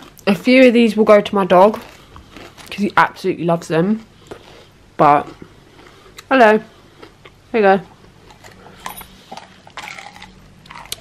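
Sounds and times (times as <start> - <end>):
dog chewing food: 8.1 - 11.0.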